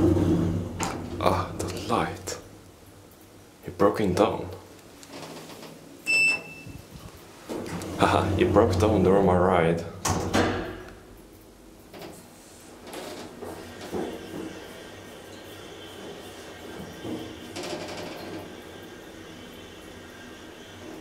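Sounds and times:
elevator running whine: 0.0s - 3.5s, 5.2s - 12.2s, 12.8s - 21.0s.

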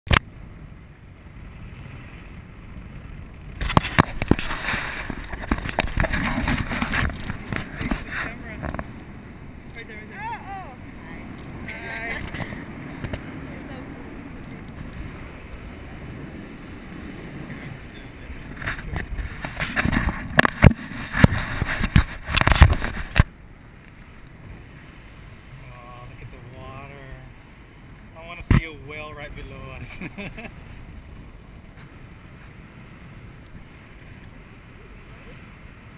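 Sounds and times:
wind buffeting microphone: 0.1s - 35.9s.

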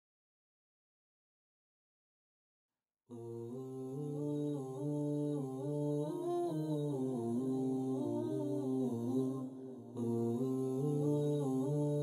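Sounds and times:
a cappella humming voices: 3.1s - 12.0s.

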